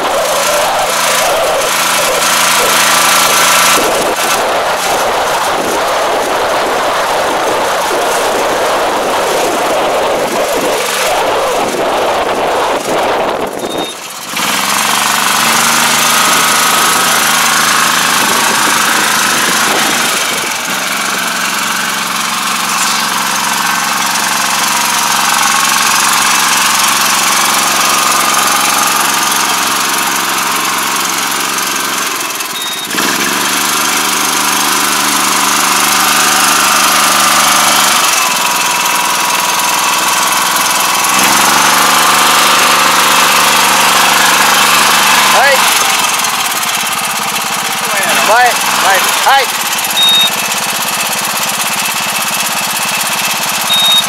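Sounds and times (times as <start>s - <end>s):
engine running under load: 0.0s - 54.0s.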